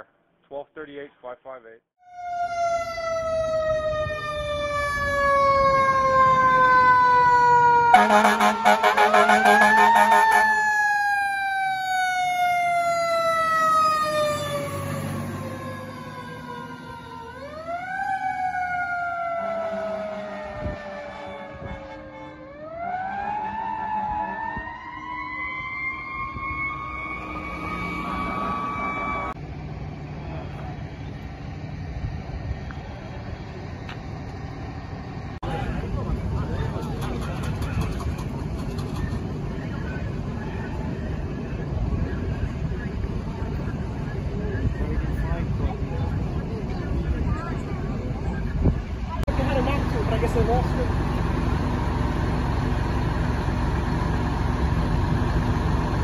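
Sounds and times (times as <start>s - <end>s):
fire engine siren: 2.0s - 29.4s, 48.9s - 56.0s
loud horn blast: 7.9s - 10.6s, 19.6s - 24.4s.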